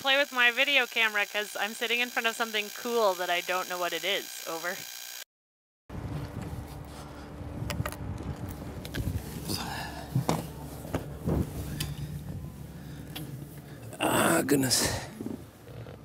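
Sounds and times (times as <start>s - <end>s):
low hum: 5.9s - 16.0s
fabric rustling: 9.0s - 12.8s
knocks and bumps against hull: 10.1s - 11.8s.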